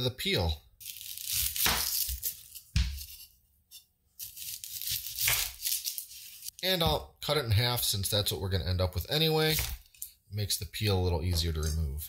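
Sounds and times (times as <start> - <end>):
knife cutting onion on board: 0.9 - 6.3.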